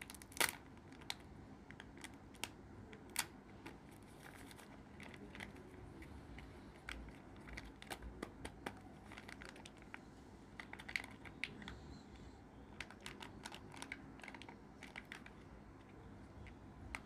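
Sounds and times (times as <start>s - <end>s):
foil crinkling: 3.1s - 5.8s, 6.7s - 10.0s
plastic egg clicks and taps: 6.4s - 10.0s.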